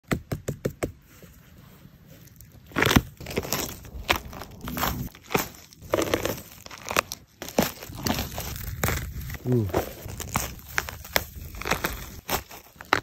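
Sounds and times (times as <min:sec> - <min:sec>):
mushroom crunching: 0:02.2 - 0:13.0
sharp snaps and crackles: 0:02.4 - 0:13.0.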